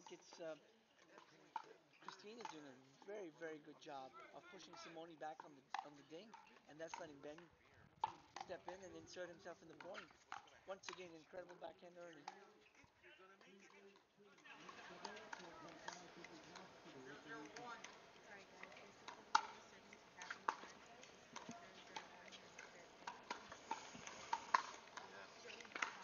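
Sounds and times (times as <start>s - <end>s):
paddles hitting plastic ball: 0.0s - 3.4s, 4.3s - 26.0s
faint voices murmuring: 0.0s - 26.0s.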